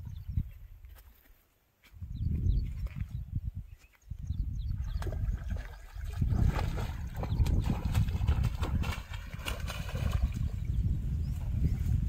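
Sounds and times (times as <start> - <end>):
wind buffeting microphone: 0.0 - 1.0, 1.9 - 12.0
rustles of water plants: 0.4 - 12.0
fish splashing: 5.2 - 10.4.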